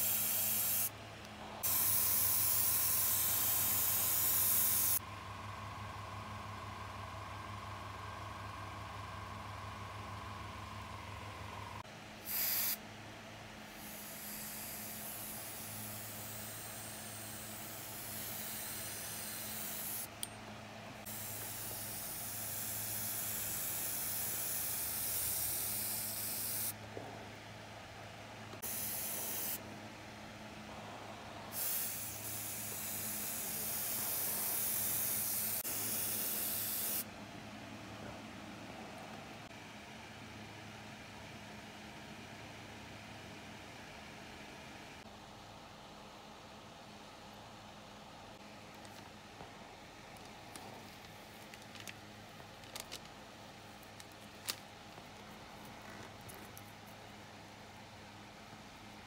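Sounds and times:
airbrush spraying hiss: 0:00.0 - 0:00.9, 0:01.6 - 0:05.0, 0:12.2 - 0:12.8, 0:13.7 - 0:20.1, 0:21.0 - 0:26.8, 0:28.6 - 0:29.6, 0:31.5 - 0:37.0
steady low hum: 0:00.0 - 0:59.0.

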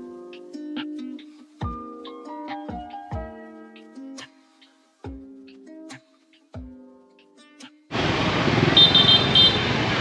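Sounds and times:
motorbike and car engines: 0:07.9 - 0:10.0
short high-pitched horn beeps: 0:08.8 - 0:09.6.

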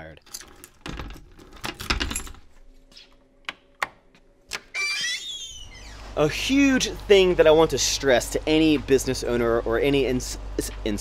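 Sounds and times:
glass door squeaking: 0:04.6 - 0:06.2
low steady rumble: 0:05.5 - 0:11.0.

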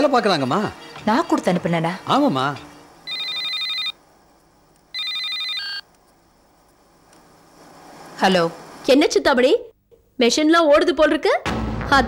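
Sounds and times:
mobile phone ringtone trilling: 0:03.0 - 0:04.0, 0:04.9 - 0:05.8.

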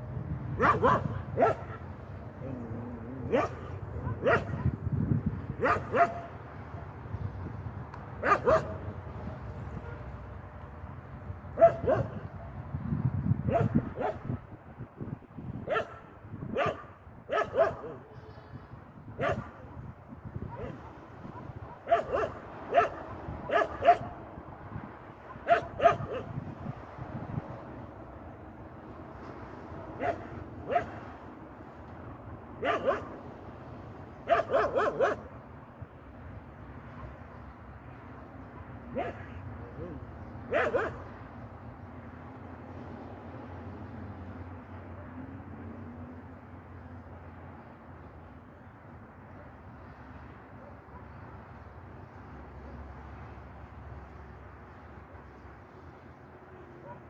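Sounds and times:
dog barking: 0:00.6 - 0:01.8, 0:03.3 - 0:04.8, 0:05.6 - 0:06.3, 0:08.2 - 0:08.8, 0:11.6 - 0:12.2, 0:13.5 - 0:14.3, 0:15.7 - 0:16.0, 0:16.6 - 0:18.0, 0:19.2 - 0:19.5, 0:20.5 - 0:24.1, 0:25.3 - 0:26.4, 0:30.0 - 0:31.0, 0:32.6 - 0:33.2, 0:34.3 - 0:35.3, 0:38.6 - 0:41.1, 0:56.8 - 0:57.0.

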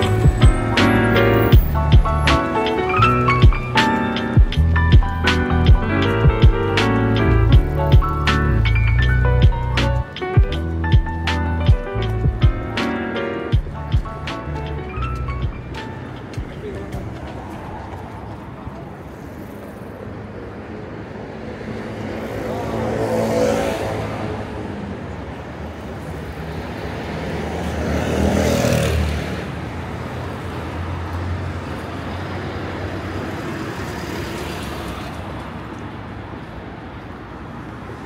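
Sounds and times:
cars driving past: 0:00.0 - 0:38.0
traffic hum: 0:00.0 - 0:38.0.

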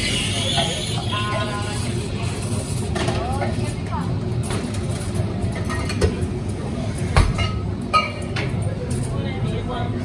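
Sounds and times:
customers chattering: 0:00.0 - 0:10.0.

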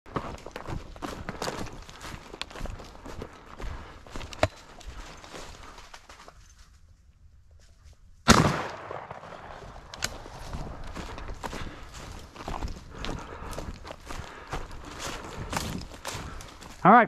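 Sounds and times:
footsteps crunching through dry grass: 0:00.1 - 0:08.3, 0:09.2 - 0:17.0
shotgun blast: 0:08.3 - 0:09.9.

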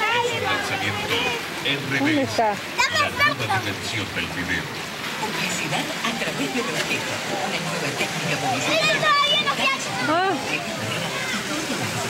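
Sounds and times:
water noise: 0:00.0 - 0:12.0.

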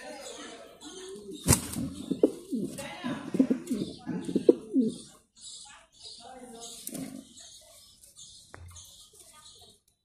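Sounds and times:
pigeon cooing: 0:00.8 - 0:05.1.

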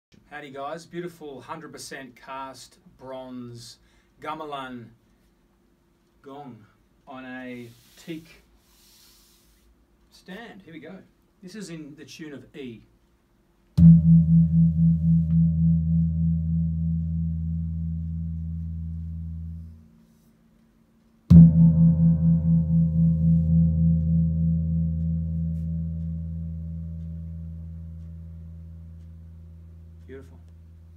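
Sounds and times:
gong ringing: 0:21.3 - 0:30.9.

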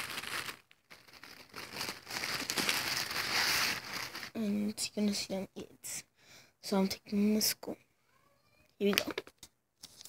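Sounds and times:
material rustling and crinkling: 0:00.0 - 0:04.4.

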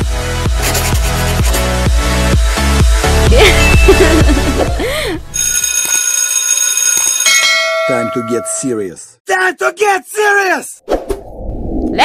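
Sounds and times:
bell ringing: 0:03.4 - 0:08.8.

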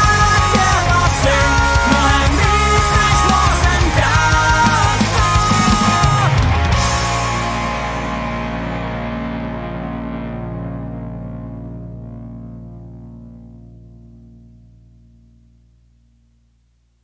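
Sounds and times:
distorted electric guitar chord: 0:00.0 - 0:16.5.

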